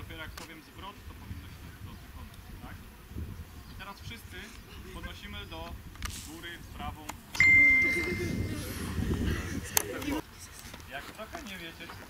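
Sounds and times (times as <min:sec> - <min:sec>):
high bell ding: 0:07.4 - 0:08.7.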